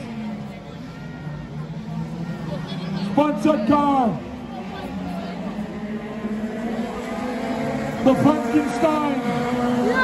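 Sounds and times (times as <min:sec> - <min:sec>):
race car engines running: 0:00.0 - 0:10.0.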